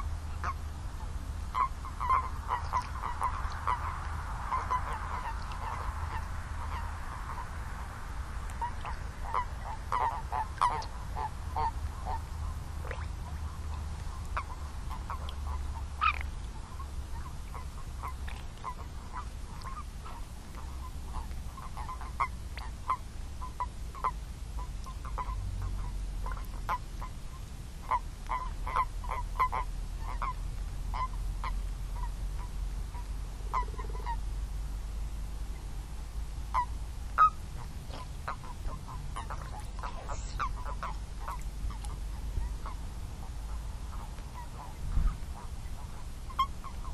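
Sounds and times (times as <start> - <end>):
steady low rumble: 0.0 - 46.9
toads croaking: 1.5 - 7.5, 8.6 - 13.4, 14.3 - 24.2, 33.0 - 34.3, 36.5 - 44.7.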